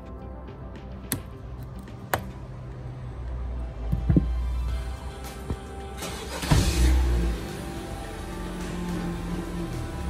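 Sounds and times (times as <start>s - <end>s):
background music: 0.0s - 10.0s
car engine starting and idling: 1.4s - 10.0s.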